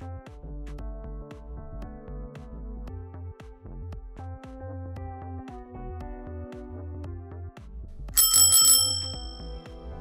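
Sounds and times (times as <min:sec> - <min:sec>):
background music with steady beat: 0:00.0 - 0:10.0
bicycle bell ringing: 0:08.2 - 0:09.7.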